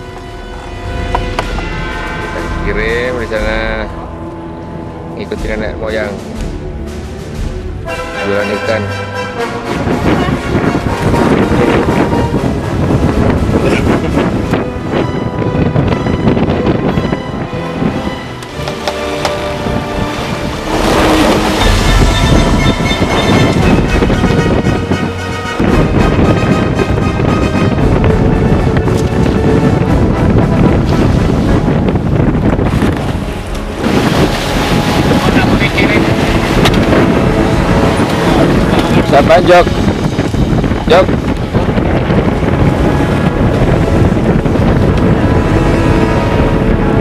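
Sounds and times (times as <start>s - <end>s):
background music with sustained notes: 0.0s - 47.0s.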